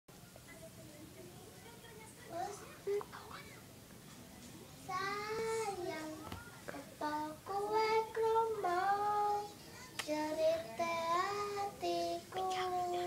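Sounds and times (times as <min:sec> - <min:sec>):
child singing: 0:04.9 - 0:13.0.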